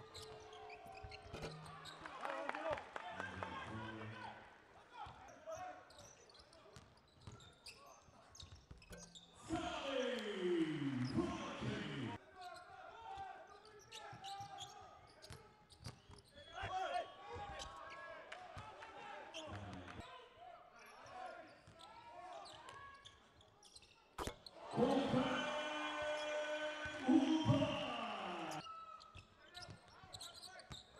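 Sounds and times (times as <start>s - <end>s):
voices: 9.4s - 12.2s, 24.6s - 28.6s.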